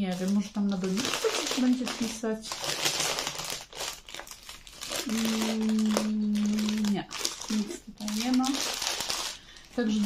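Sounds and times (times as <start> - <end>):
paper wrapping crinkling: 0.0 - 10.0
woman humming: 5.0 - 7.0.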